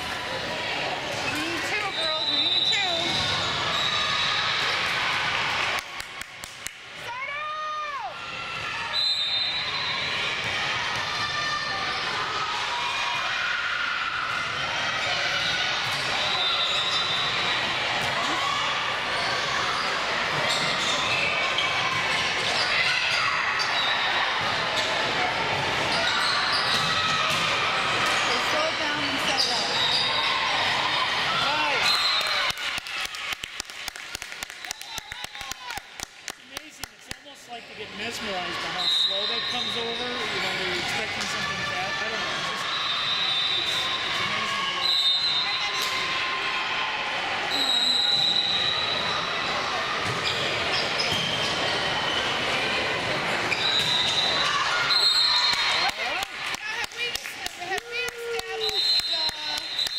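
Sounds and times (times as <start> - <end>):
voices calling and chattering: 0.0 - 6.0, 6.9 - 33.2, 34.8 - 59.9.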